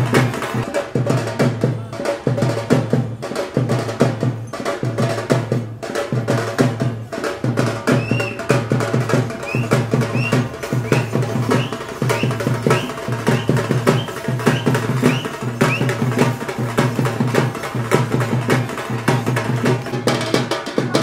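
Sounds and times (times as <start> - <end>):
folk drums beaten with sticks: 0.0 - 21.0.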